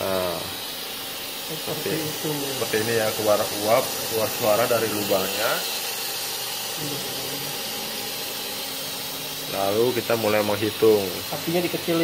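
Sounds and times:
pressure cooker venting steam: 0.0s - 12.0s.

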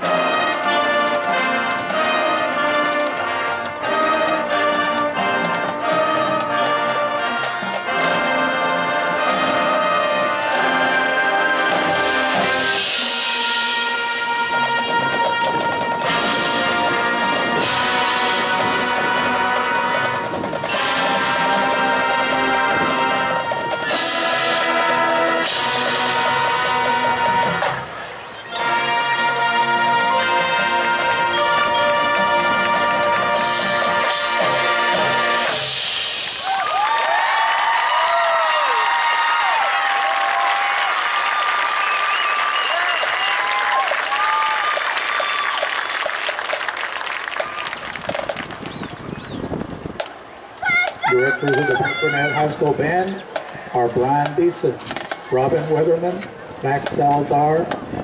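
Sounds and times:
marching band playing: 0.0s - 58.0s
crowd cheering and applauding: 33.4s - 49.8s.

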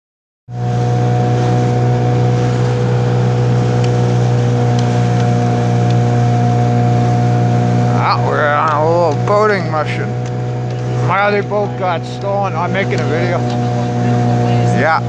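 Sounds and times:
boat motor humming: 0.5s - 15.0s.

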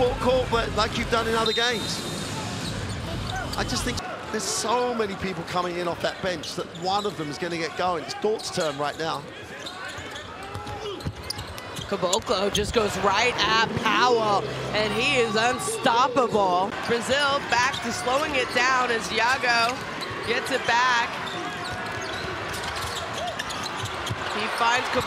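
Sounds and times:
murmur of arena crowd: 0.0s - 25.0s.

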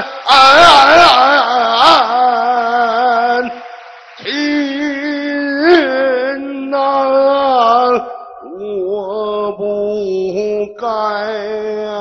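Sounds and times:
man singing opera: 0.0s - 12.0s.

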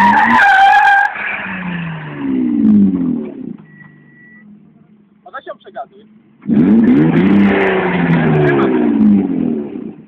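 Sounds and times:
car engine revving hard: 0.0s - 3.6s, 6.4s - 10.0s.

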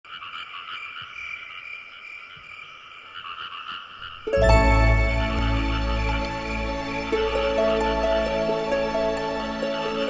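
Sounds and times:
frogs croaking: 0.1s - 4.3s.

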